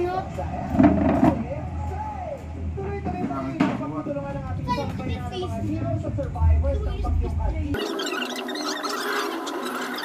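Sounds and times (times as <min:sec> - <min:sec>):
steady low hum: 0:00.0 - 0:08.2.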